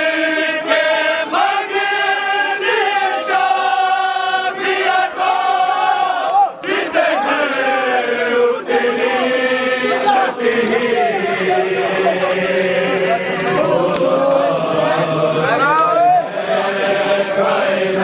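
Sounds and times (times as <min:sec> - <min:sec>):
men chanting a lament: 0:00.0 - 0:18.0.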